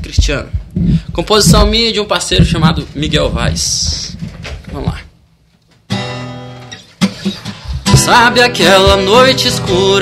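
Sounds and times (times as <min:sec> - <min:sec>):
acoustic guitar chord strummed: 0:05.9 - 0:10.0.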